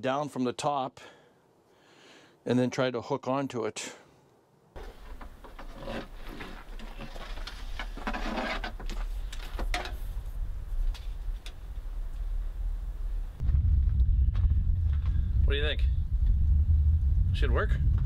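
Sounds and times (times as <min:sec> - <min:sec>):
cable rubbing and scraping: 0:04.8 - 0:11.5
steady low rumble: 0:09.1 - 0:18.0.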